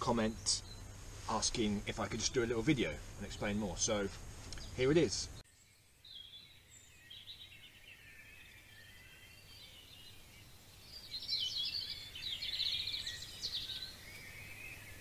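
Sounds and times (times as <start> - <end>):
birds chirping and singing: 0.0 - 15.0
faint background hiss: 0.0 - 15.0.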